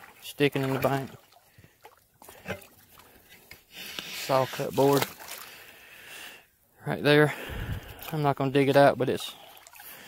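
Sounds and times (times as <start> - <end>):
rubbing and shuffling in creek: 0.0 - 6.0, 7.0 - 10.0.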